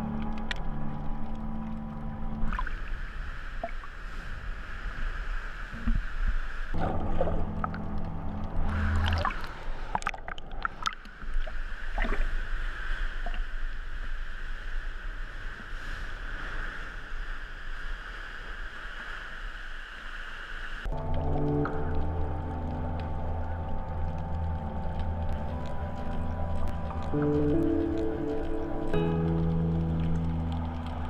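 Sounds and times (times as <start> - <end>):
music with long held notes: 0.0 - 2.7, 6.8 - 9.8, 20.9 - 31.0.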